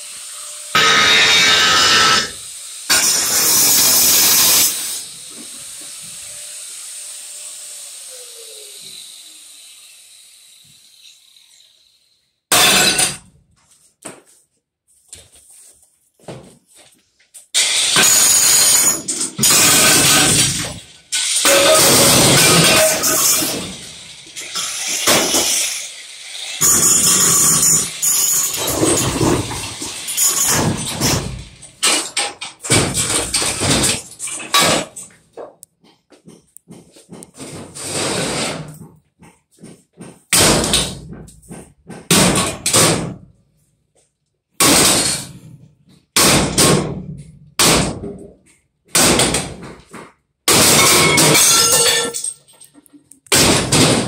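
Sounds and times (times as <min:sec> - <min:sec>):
power tool grinding and hammering: 0:00.0 - 0:13.3, 0:17.5 - 0:43.2
porcelain smashing and falling: 0:12.5 - 0:13.3, 0:17.6 - 0:25.6, 0:26.5 - 0:35.2, 0:49.0 - 0:54.0.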